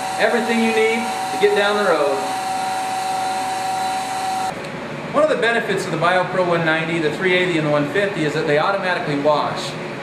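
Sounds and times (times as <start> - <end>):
electric fuel pump running: 0.0 - 4.6.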